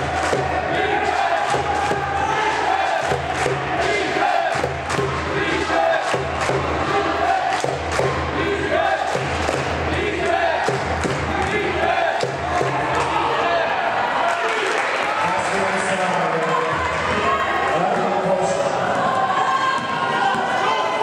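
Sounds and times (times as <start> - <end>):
echoing basketball game sounds: 0.0 - 21.0.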